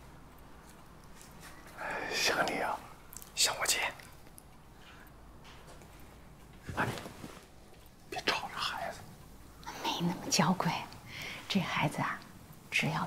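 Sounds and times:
hushed whispering voices: 0:01.7 - 0:04.2, 0:08.1 - 0:13.0.

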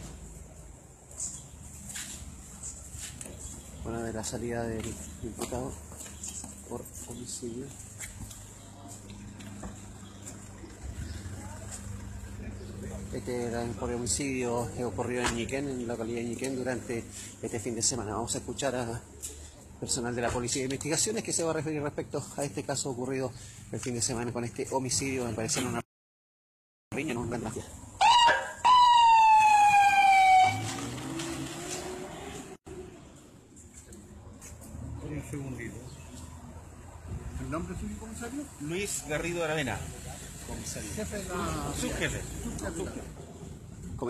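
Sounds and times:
vehicle engine idling: 0:00.0 - 0:17.8
siren whoop and wail: 0:28.0 - 0:30.9.

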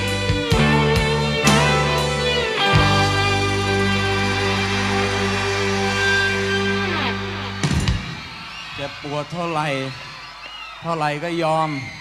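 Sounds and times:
rock band chord: 0:00.0 - 0:08.2.

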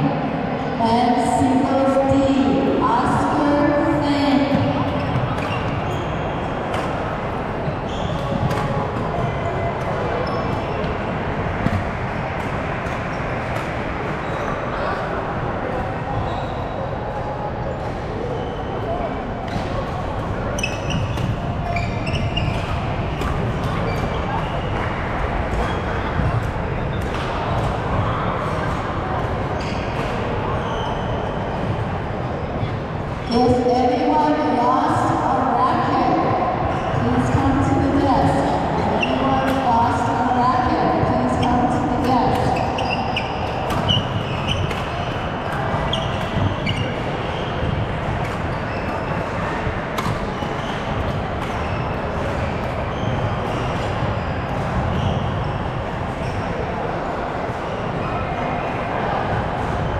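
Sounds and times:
hubbub of many voices: 0:00.0 - 0:59.9
rackets striking shuttlecocks: 0:42.0 - 0:46.5.

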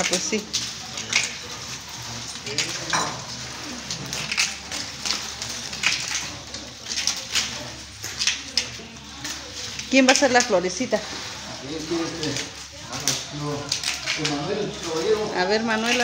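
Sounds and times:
faint background voices: 0:00.0 - 0:16.0
palm fronds rustling and crackling: 0:00.0 - 0:16.0.

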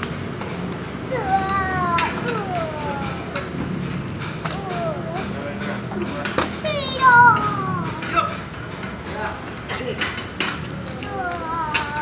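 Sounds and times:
people calling out and talking: 0:01.0 - 0:12.0.

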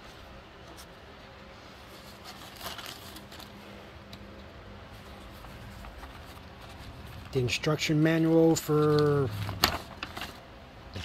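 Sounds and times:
paper rustling: 0:01.8 - 0:03.7, 0:04.9 - 0:10.4.

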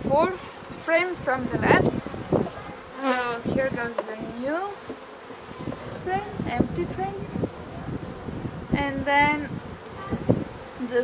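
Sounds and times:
bee buzzing: 0:00.0 - 0:11.0.

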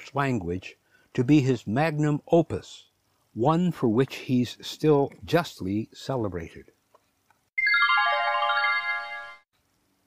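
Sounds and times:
descending bright musical sting: 0:07.6 - 0:09.4.

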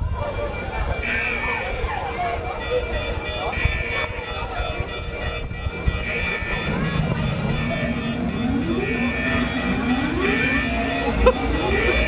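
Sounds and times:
siren wailing: 0:00.5 - 0:12.0.

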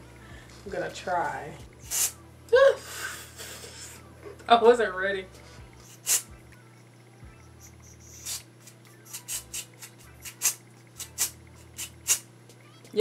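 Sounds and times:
aerosol spray hissing: 0:01.8 - 0:02.2, 0:05.8 - 0:06.3, 0:07.7 - 0:12.3.

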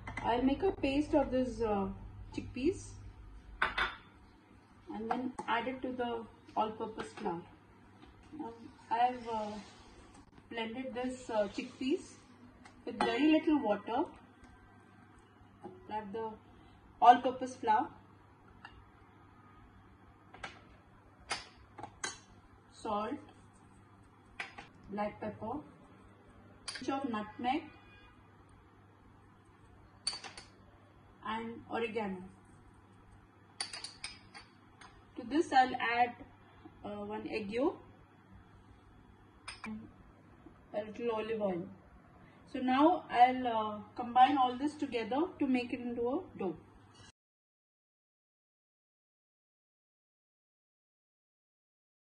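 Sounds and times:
faint steady hum: 0:00.0 - 0:47.1
kitchenware clinking: 0:33.6 - 0:34.4.

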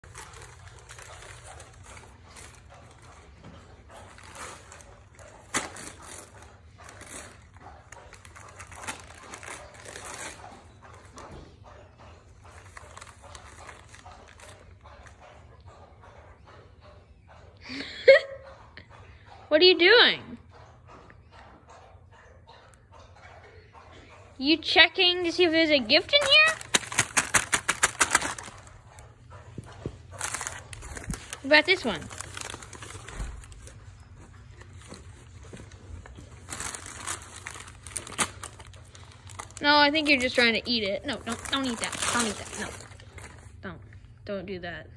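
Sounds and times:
paper crinkling: 0:00.0 - 0:10.6, 0:12.5 - 0:14.7, 0:25.3 - 0:43.6.

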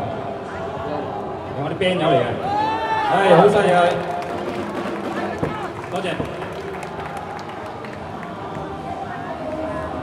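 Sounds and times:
crowd clapping: 0:03.4 - 0:10.0.

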